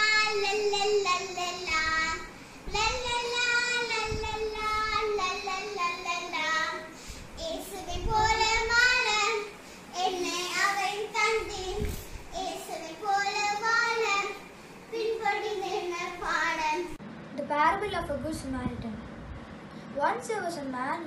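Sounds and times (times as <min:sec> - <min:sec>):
girl singing: 0:00.0 - 0:17.0.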